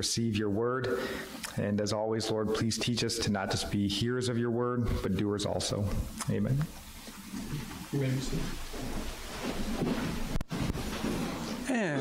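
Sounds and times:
people moving about rustling: 4.8s - 12.0s.

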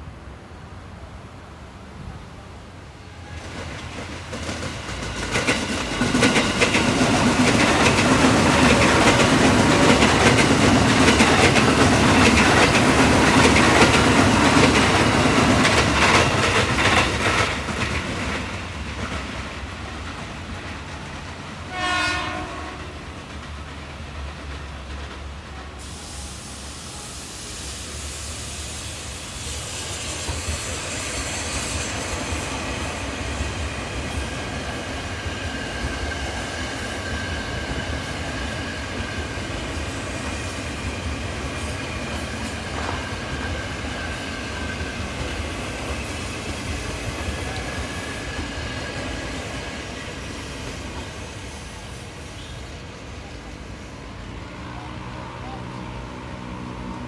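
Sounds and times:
train wheels clattering: 3.4s - 26.1s, 28.4s - 52.5s
train horn blast: 21.7s - 23.1s.

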